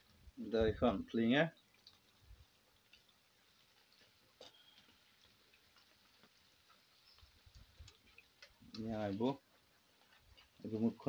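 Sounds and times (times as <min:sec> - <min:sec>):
oil popping and ticking: 0:00.0 - 0:11.0.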